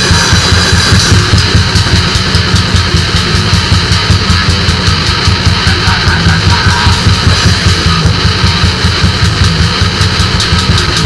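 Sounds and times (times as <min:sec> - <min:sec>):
distorted guitars and bass: 0:00.0 - 0:11.0
fast dense drumming: 0:00.0 - 0:11.0.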